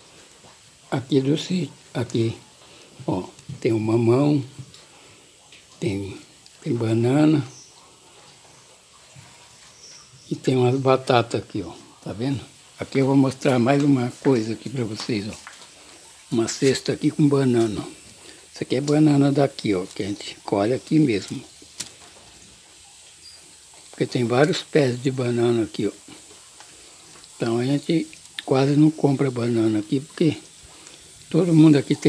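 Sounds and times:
faint room tone hiss: 0.0s - 32.0s.

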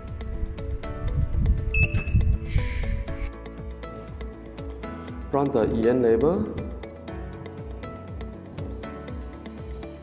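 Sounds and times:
background music with steady beat: 0.0s - 10.0s
electronic beep: 1.7s - 2.4s.

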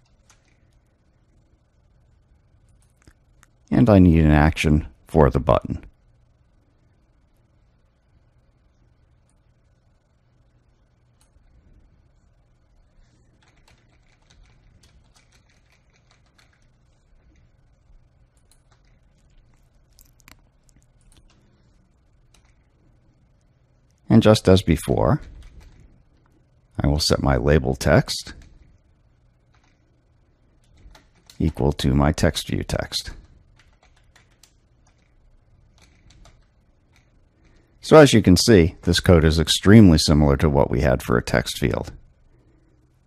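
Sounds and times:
computer keyboard typing: 0.0s - 0.8s, 13.0s - 17.5s, 18.2s - 21.6s, 22.2s - 22.8s, 25.1s - 25.8s, 29.5s - 29.9s, 30.6s - 37.6s.

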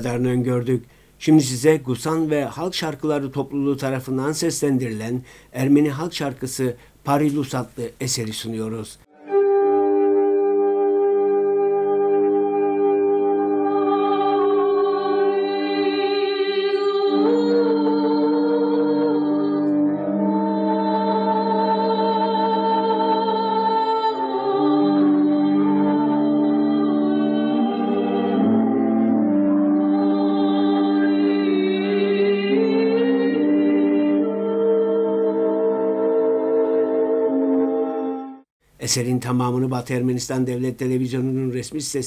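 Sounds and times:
folk ensemble singing chord: 9.1s - 38.4s.

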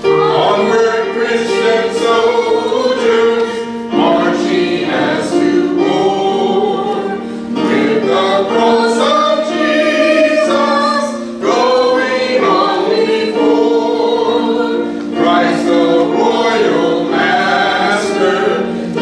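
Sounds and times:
congregation singing a hymn: 0.0s - 19.0s.

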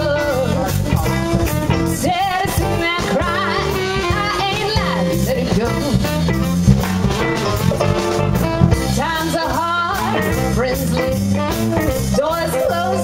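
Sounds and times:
live blues band playing: 0.0s - 13.0s
sliding lead melody: 0.0s - 13.0s.

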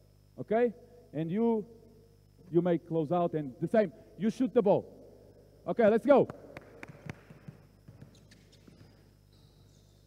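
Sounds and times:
basketball bouncing on court: 6.3s - 9.0s
sneaker squeaks on floor: 7.4s - 10.0s.

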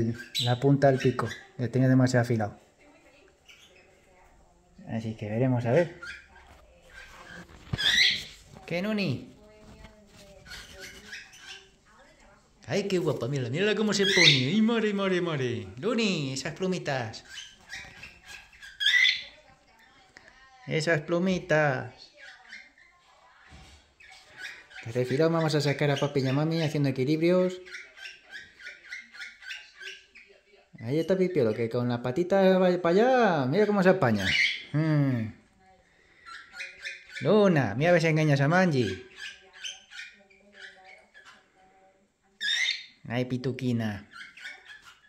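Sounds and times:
parrot chirping: 0.0s - 41.7s, 42.3s - 45.0s
soft bird chirps: 3.1s - 4.2s, 4.8s - 15.6s.

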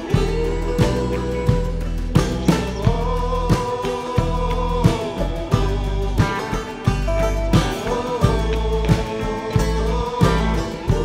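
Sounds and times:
country rock band music: 0.0s - 11.0s.

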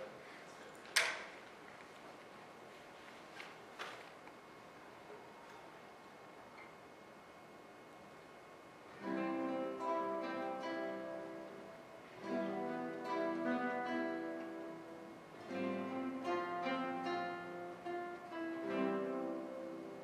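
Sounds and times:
classical guitar ensemble playing: 8.9s - 20.0s.

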